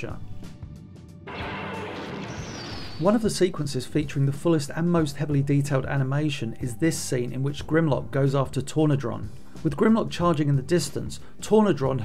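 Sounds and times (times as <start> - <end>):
high whistle falling in pitch: 1.3 - 3.1
cartoon rushing blast: 1.3 - 3.2.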